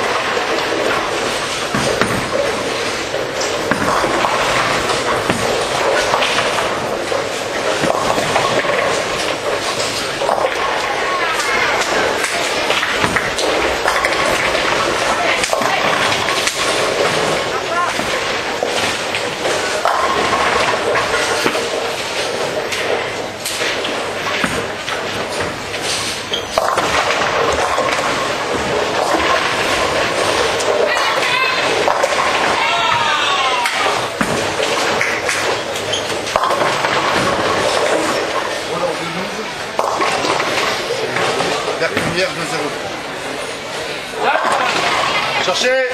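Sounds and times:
bowling balls and pins clattering: 0:00.0 - 0:45.9
din of many voices: 0:08.8 - 0:24.8, 0:28.5 - 0:35.5, 0:37.0 - 0:45.9.

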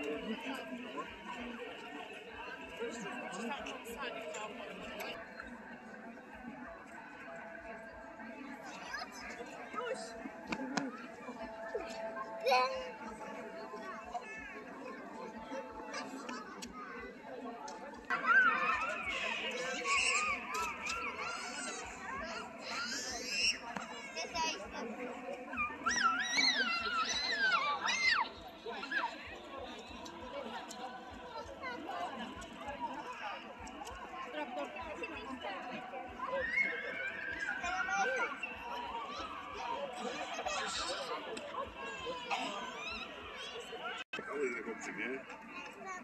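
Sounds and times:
distant people chattering: 0:00.0 - 0:46.0.

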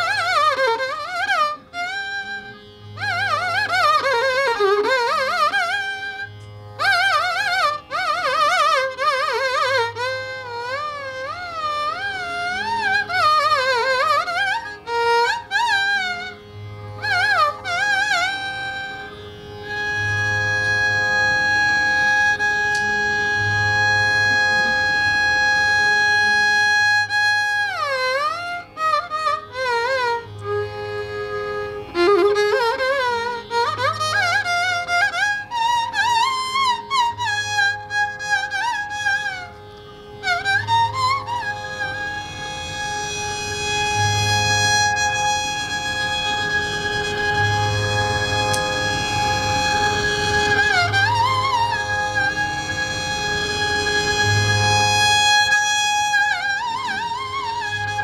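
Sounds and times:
tanpura drone: 0:00.0 - 0:58.0
violin holding a long note: 0:00.0 - 0:58.0.

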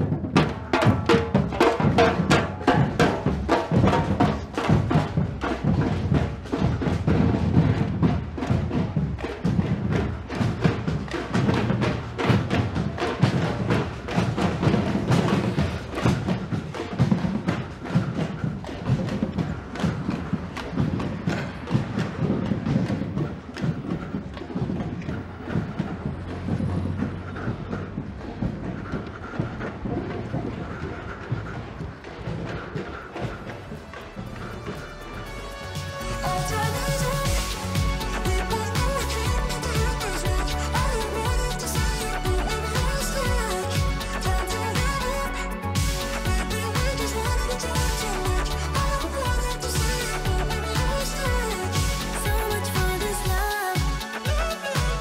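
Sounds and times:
drum band playing fast beat: 0:00.0 - 0:28.9, 0:29.5 - 0:55.0.

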